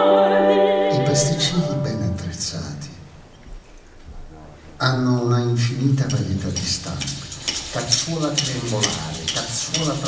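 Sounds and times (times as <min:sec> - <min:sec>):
low male voice: 0:00.9 - 0:03.0
hand tools tapping and clinking: 0:06.0 - 0:10.0.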